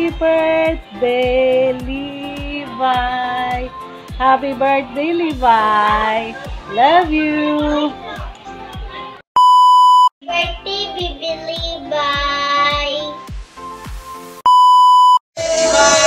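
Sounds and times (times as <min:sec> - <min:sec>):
background music with steady beat: 0:00.0 - 0:09.2, 0:10.2 - 0:14.5
loud electronic beeps: 0:09.4 - 0:10.1, 0:14.5 - 0:15.2
child's voice: 0:10.2 - 0:13.3, 0:15.4 - 0:16.0.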